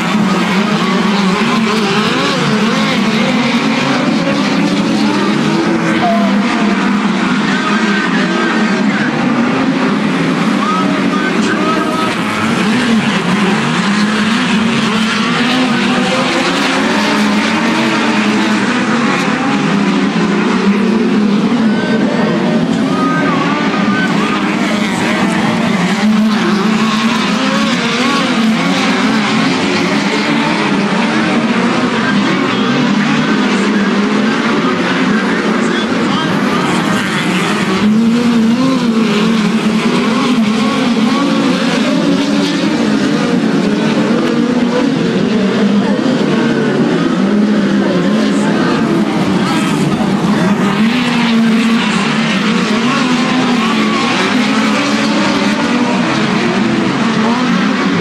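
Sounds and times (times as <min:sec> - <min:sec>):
crowd voices: 0:00.0 - 0:58.0
race car engines: 0:00.0 - 0:58.0.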